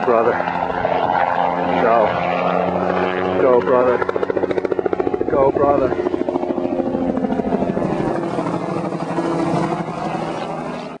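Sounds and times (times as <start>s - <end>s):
helicopter rotor beating: 0.0s - 11.0s.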